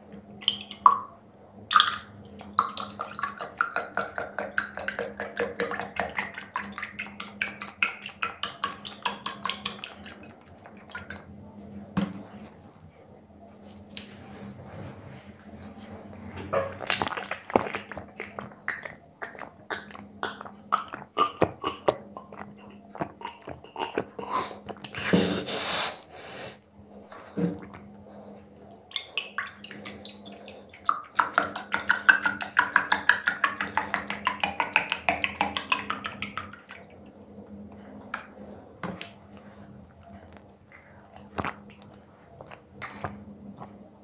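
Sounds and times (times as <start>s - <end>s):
juice being swallowed: 16.5s - 25.5s, 27.0s - 44.0s
small mouth sounds: 16.7s - 26.0s, 39.0s - 43.8s.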